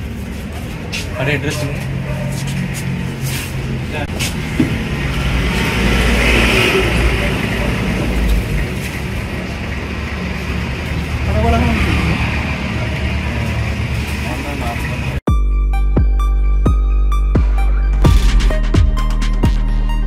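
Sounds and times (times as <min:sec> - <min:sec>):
indistinct voices: 0:00.4 - 0:15.2.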